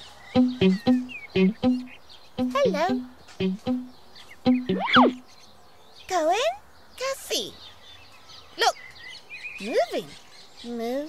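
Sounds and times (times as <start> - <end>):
short high chirp: 0.4 - 3.9, 4.5 - 5.2
cartoon child's voice: 2.4 - 3.0.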